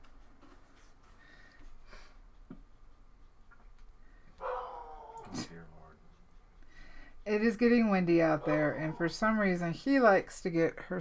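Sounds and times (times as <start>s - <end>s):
dog barking: 4.4s - 5.4s, 8.4s - 9.2s.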